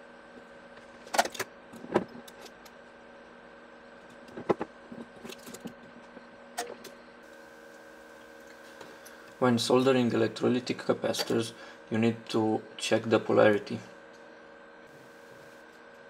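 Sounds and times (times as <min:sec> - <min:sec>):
steady electrical hum: 0:00.0 - 0:16.0.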